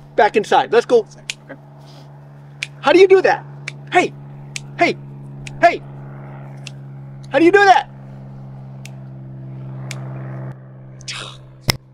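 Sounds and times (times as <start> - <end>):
motor hum: 0.0 - 11.9.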